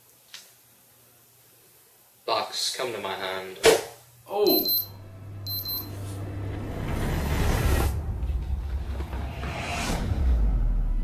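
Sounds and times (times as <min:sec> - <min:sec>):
deep low rumble: 0:06.2 - 0:11.0.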